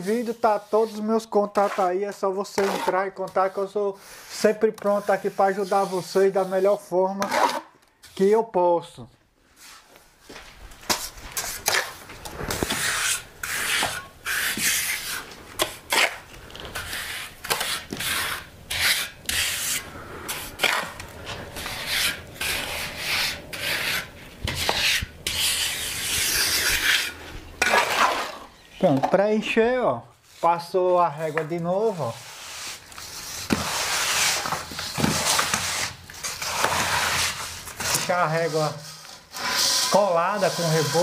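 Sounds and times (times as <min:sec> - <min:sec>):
trowel scraping mortar: 0:00.0 - 0:08.4, 0:10.9 - 0:29.0, 0:30.3 - 0:41.0.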